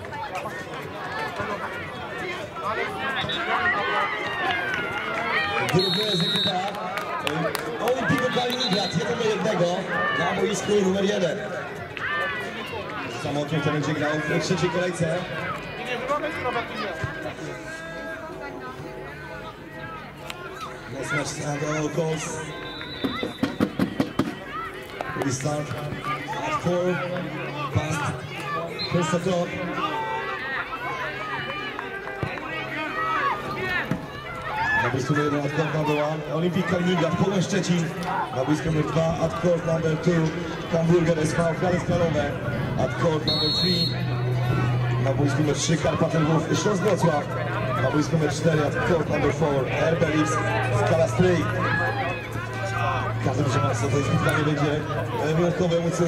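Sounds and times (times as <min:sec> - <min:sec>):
children and adults shouting: 0:00.0 - 0:06.6, 0:07.2 - 0:56.0
referee whistle blast: 0:05.7 - 0:06.6, 0:08.4 - 0:09.2, 0:22.4 - 0:23.7, 0:43.2 - 0:44.1
children shouting: 0:27.4 - 0:37.3, 0:46.0 - 0:55.8.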